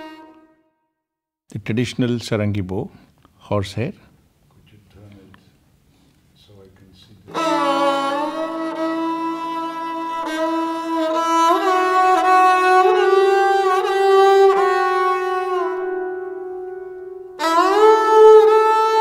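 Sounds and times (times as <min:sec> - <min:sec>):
bowed string melody: 0:00.0 - 0:00.7, 0:07.3 - 0:19.0.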